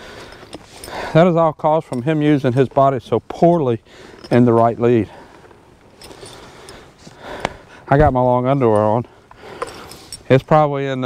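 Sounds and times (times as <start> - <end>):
outdoor background noise: 0.0 - 11.0
man speaking: 1.1 - 5.1, 7.9 - 9.1.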